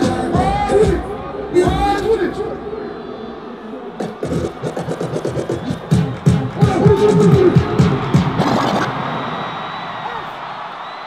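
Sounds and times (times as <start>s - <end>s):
music: 0.0s - 3.2s, 3.9s - 9.3s.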